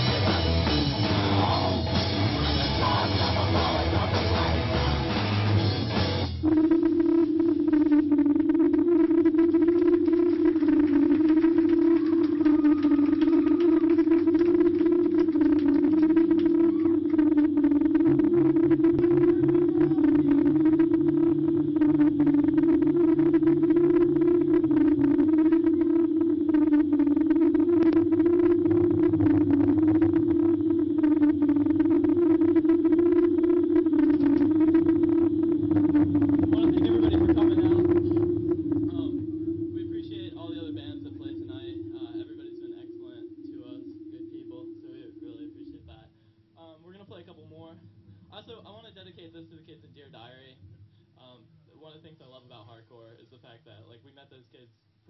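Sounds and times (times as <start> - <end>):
electric guitar feedback drone: 0.0 - 46.3
low bass note: 6.4 - 46.1.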